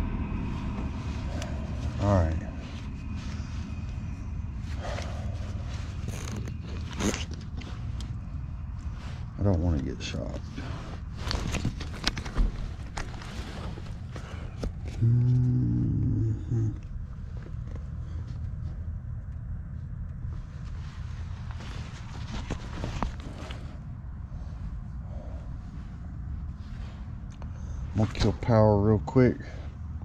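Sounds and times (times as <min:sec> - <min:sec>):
short low hum: 0:00.0 - 0:09.5, 0:10.4 - 0:28.8
low steady rumble: 0:00.0 - 0:30.0.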